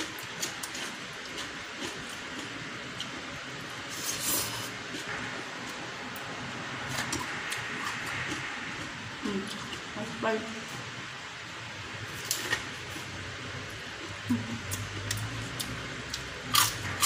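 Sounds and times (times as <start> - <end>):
chewing and wet mouth noises: 0.0 - 3.4.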